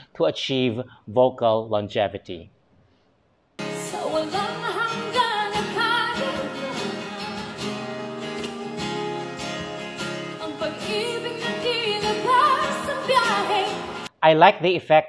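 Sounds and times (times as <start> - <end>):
woman singing: 3.6 - 9.3, 10.2 - 14.1
strummed acoustic guitar: 3.6 - 14.1.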